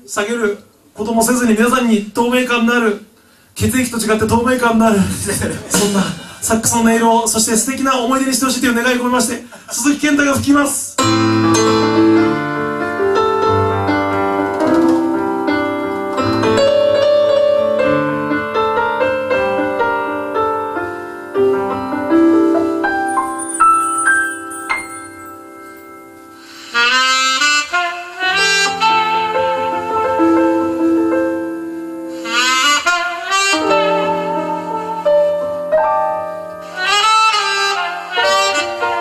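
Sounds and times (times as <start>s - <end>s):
band with keyboard: 11.0s - 39.0s
gentle piano playing: 11.0s - 39.0s
saxophone solo: 21.4s - 25.9s, 26.6s - 39.0s.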